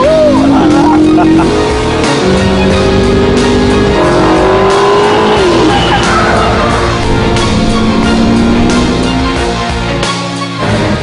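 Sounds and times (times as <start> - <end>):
car engine running hard: 0.0 - 9.9.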